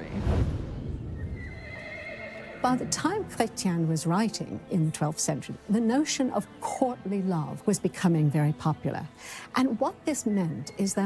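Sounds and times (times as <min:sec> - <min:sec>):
horse whinnying: 0:01.2 - 0:02.9.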